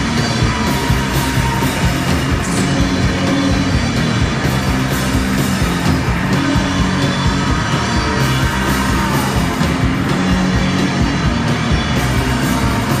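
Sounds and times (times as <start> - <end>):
bass guitar: 0.0 - 13.0
distorted electric guitars: 0.0 - 13.0
drums: 0.0 - 13.0.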